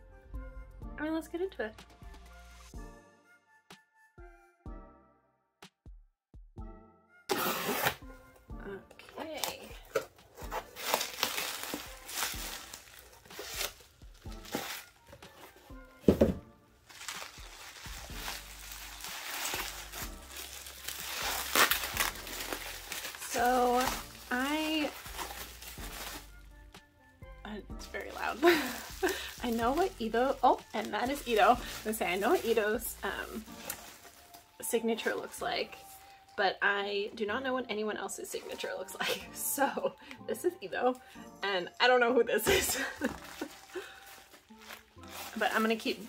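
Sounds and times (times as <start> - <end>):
bubble wrap crinkling: 9.0 - 26.7, 27.7 - 36.4, 42.4 - 46.0.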